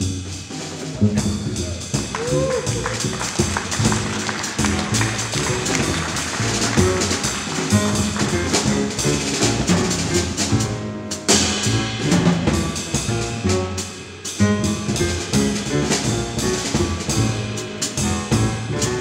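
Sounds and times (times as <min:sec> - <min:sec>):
double bass: 0:00.0 - 0:19.0
drum kit with cymbals: 0:00.0 - 0:19.0
grand piano: 0:00.0 - 0:19.0.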